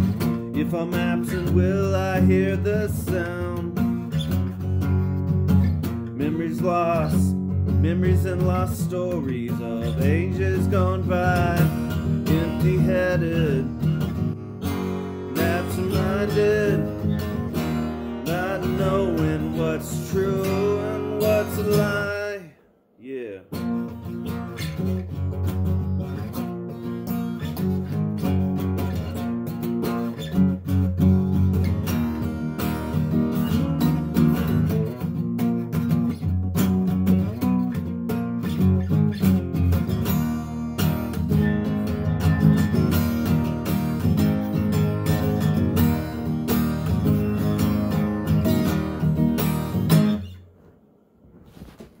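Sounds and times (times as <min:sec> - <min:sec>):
acoustic guitar playing chords: 0:00.0 - 0:50.8.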